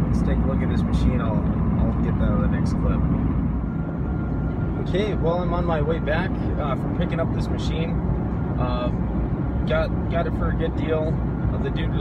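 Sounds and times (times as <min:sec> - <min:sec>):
road and engine rumble in a vehicle: 0:00.0 - 0:12.0.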